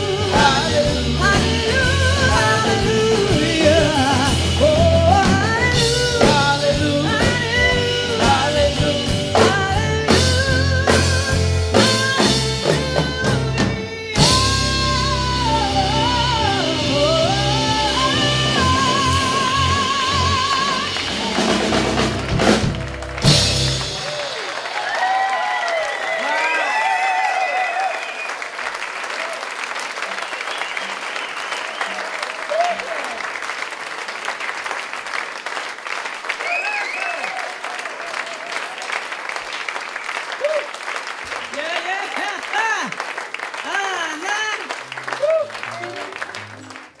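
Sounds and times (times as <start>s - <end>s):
audience clapping: 18.9s - 47.0s
audience shouts and whoops: 24.0s - 28.5s, 31.8s - 33.2s, 36.4s - 39.0s, 40.4s - 40.8s, 45.1s - 46.1s.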